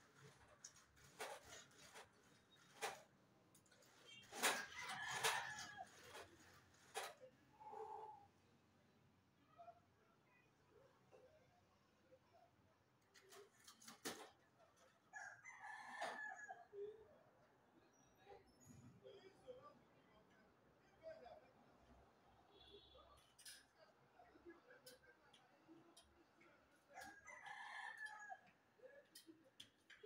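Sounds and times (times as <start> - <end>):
rooster crowing: 27.0 - 28.5.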